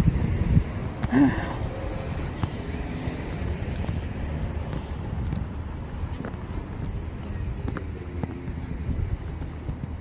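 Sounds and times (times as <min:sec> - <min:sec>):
woman sighing: 0:01.1 - 0:01.6.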